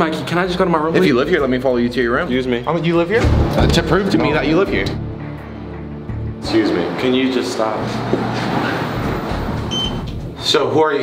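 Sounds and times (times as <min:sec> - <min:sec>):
high electronic beep: 0:09.7 - 0:10.0.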